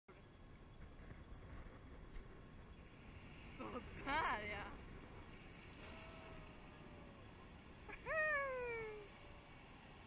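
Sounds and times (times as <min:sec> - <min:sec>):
person calling: 0:07.9 - 0:09.1.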